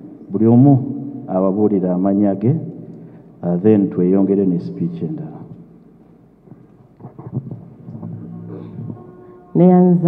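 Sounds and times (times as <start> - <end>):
low hall noise: 0.0 - 10.0
microphone handling rumble: 6.5 - 9.1.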